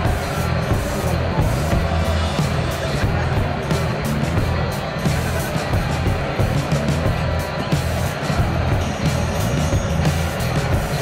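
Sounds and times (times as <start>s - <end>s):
bass-heavy music over loudspeakers: 0.0s - 11.0s.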